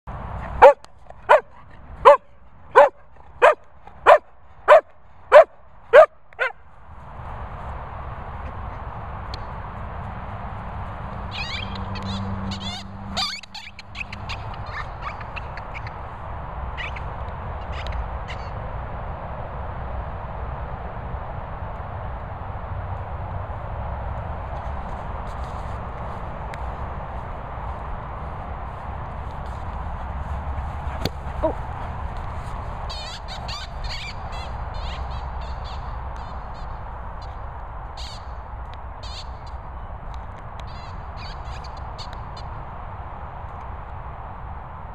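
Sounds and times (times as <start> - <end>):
wind noise: 0.1 - 44.9
dog squeaking squeaky toy: 11.3 - 15.3, 32.9 - 35.8.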